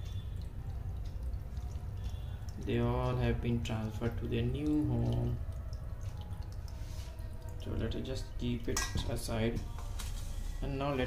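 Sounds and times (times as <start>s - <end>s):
water dripping and trickling: 0.0s - 11.0s.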